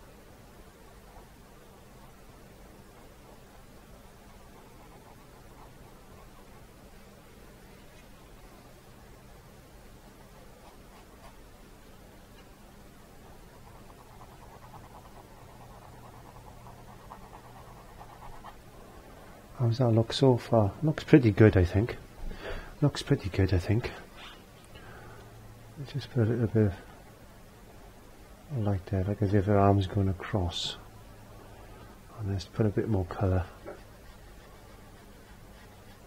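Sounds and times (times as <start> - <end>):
steady low hum: 0.0 - 36.0.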